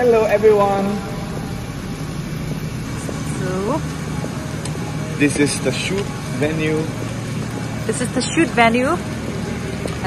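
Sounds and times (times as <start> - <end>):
background rumble: 0.0 - 10.0
low mechanical hum: 0.0 - 10.0.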